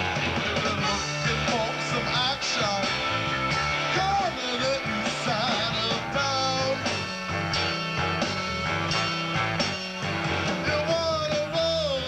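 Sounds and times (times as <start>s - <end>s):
drums: 0.0s - 12.0s
electric bass line: 0.0s - 12.0s
electric guitar: 0.0s - 12.0s.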